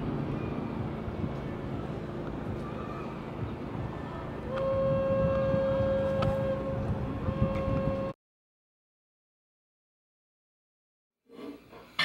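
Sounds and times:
wind: 0.0 - 8.2, 11.2 - 12.0
horn long steady note: 4.0 - 8.2.

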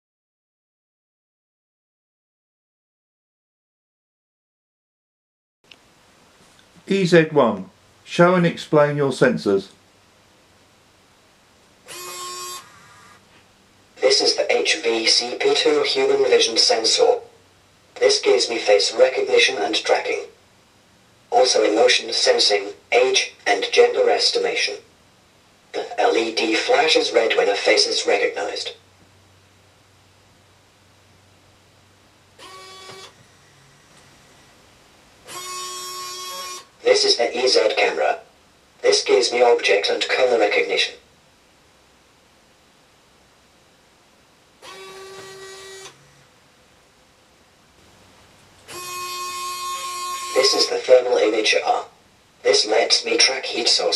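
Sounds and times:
robot arm servo motors whirring: 11.9 - 13.2, 32.4 - 34.5, 35.3 - 36.7, 44.6 - 46.2.

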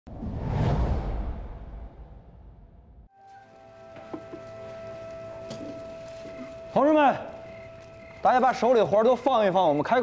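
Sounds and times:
cinematic whoosh: 0.1 - 3.1.

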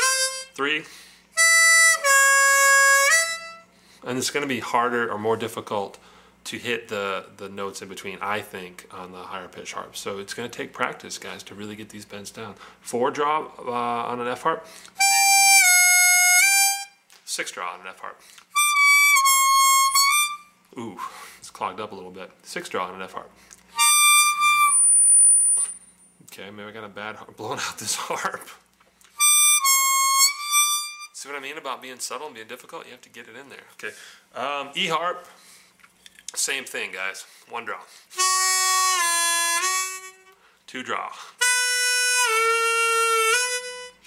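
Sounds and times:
harmonica note bending: 0.0 - 3.8, 15.0 - 17.0, 18.5 - 21.1, 23.7 - 26.0, 29.2 - 31.2, 38.1 - 40.5, 41.2 - 44.0.

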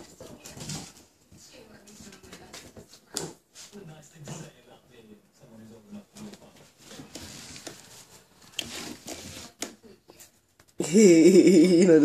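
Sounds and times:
rustling of plush toys and blankets: 0.0 - 4.5, 5.9 - 10.8.

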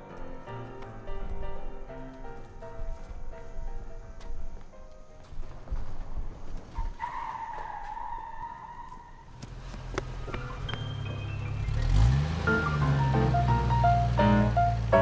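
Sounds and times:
soft film music: 0.0 - 6.8, 9.6 - 15.0
tyres squealing: 6.6 - 15.0.

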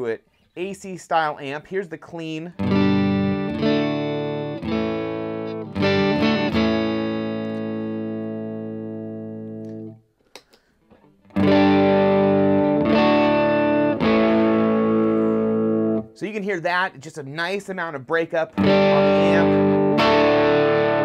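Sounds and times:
clean electric guitar chords: 2.6 - 10.0, 11.3 - 16.2, 18.6 - 21.0
overdriven electric guitar chords: 2.6 - 10.0, 11.2 - 16.2, 18.6 - 21.0.

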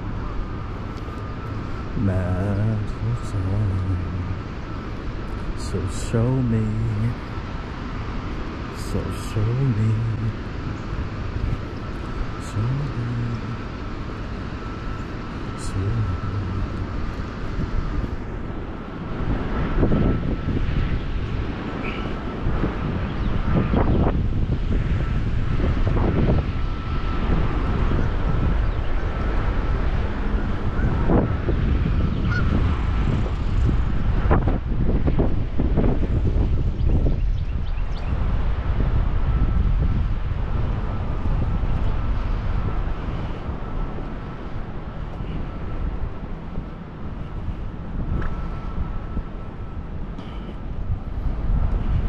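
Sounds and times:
faint high whine: 0.0 - 52.0
wind buffeting microphone: 0.0 - 52.0.

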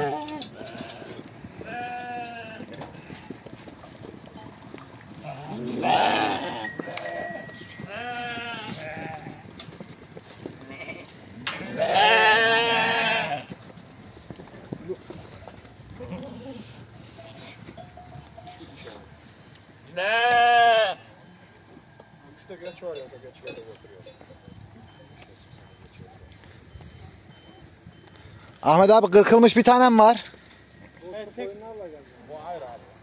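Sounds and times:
sheep bleating: 0.0 - 3.2, 5.2 - 9.4, 10.6 - 13.5, 19.9 - 21.1.

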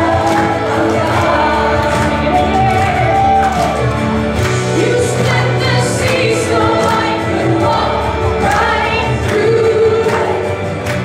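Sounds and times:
group singing worship song: 0.0 - 11.0
instrumental accompaniment with bass: 0.0 - 11.0.

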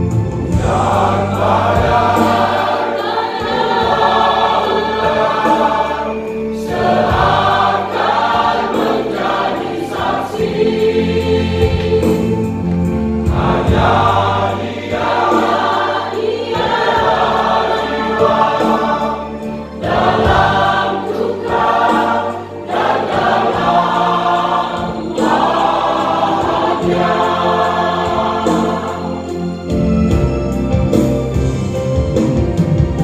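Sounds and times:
choir singing in harmony: 0.0 - 33.0.

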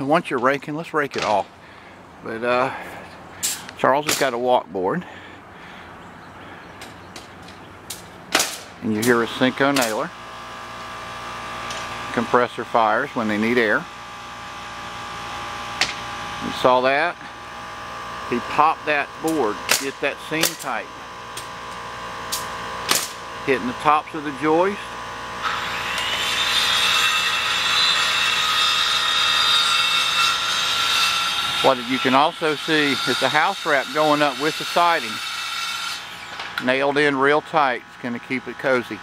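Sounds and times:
steady background hum: 0.0 - 39.0
pneumatic nailer firing: 3.4 - 4.3, 7.9 - 9.1, 9.7 - 10.0, 15.8 - 16.1, 19.3 - 20.7, 22.3 - 23.2, 35.1 - 36.7
pneumatic nailer shots: 3.4 - 4.3, 7.9 - 9.1, 9.7 - 10.0, 15.8 - 16.1, 19.3 - 20.7, 22.3 - 23.2, 25.4 - 31.6, 34.0 - 36.7.

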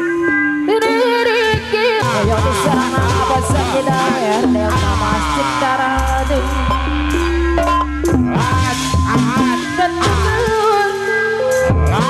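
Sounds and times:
gamelan ensemble with drums: 0.0 - 12.0
deep bass tone: 2.1 - 10.7.

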